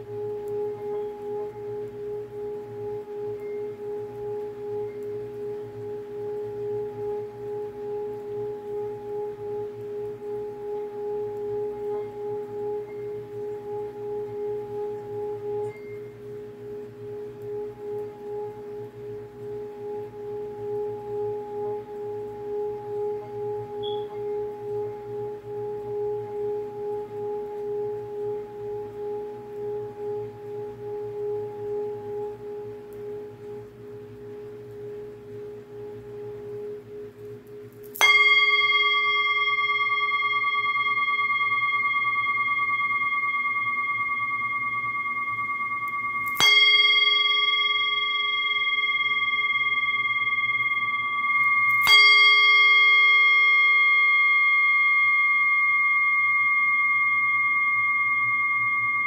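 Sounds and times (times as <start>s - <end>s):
singing bowl tone: 0.0s - 59.0s.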